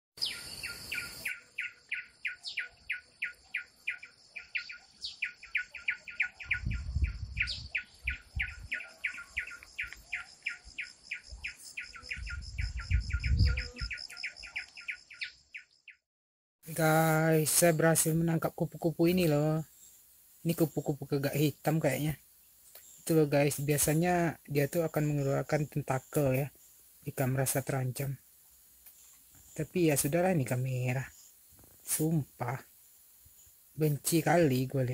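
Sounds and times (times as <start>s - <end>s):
bird chirping: 0.2s - 16.0s.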